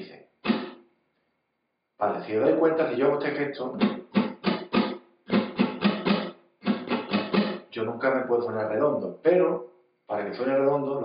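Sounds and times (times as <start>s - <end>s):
flamenco guitar strumming: 0.4s - 0.9s, 3.6s - 7.8s.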